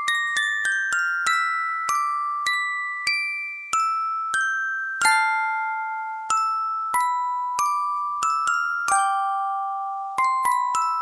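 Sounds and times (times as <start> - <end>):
music box melody: 0.0 - 11.0.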